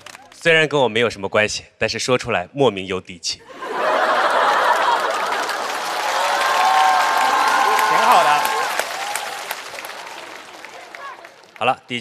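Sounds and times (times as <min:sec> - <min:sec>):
studio audience applauding: 0:00.0 - 0:00.4, 0:03.8 - 0:12.0
voices over clapping: 0:04.8 - 0:11.8.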